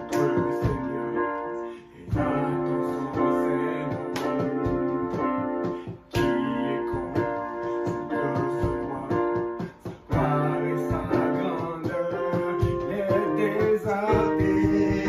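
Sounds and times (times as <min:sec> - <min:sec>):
electronic keyboard chords and melody: 0:00.0 - 0:15.0.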